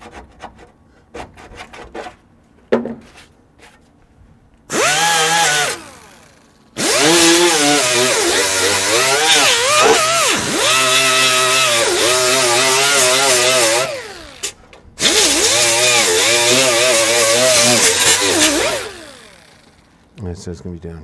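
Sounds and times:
die grinder grinding steel: 4.7 - 19.9.

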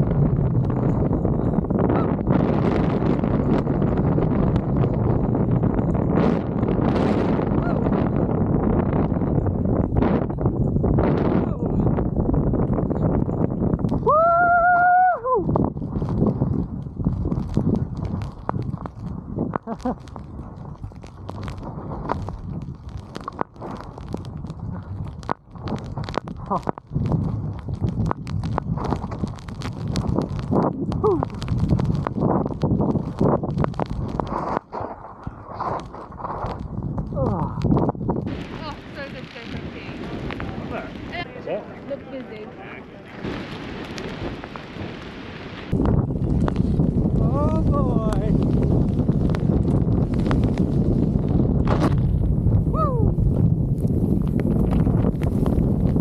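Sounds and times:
wind buffeting microphone: 0.0 - 56.0
person whooping: 14.0 - 15.5, 31.0 - 31.4, 52.7 - 53.2
skis rushing through powder snow: 15.6 - 25.0, 25.6 - 36.9, 38.2 - 56.0.

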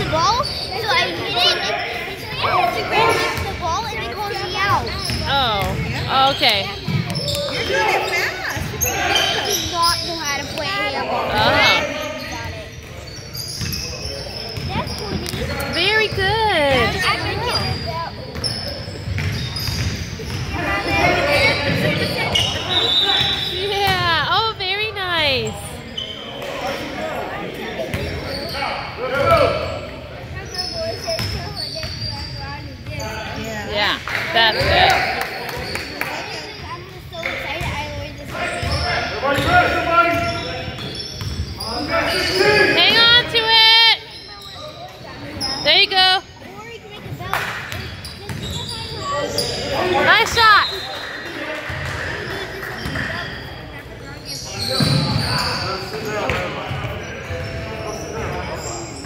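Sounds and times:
players' voices: 0.0 - 59.0
sneakers squeaking: 0.0 - 59.0
basketball bouncing on court: 3.2 - 7.7, 8.5 - 8.9, 13.6 - 22.6, 30.4 - 33.1, 34.0 - 35.8, 37.2 - 41.6, 46.9 - 49.1, 54.7 - 55.2.

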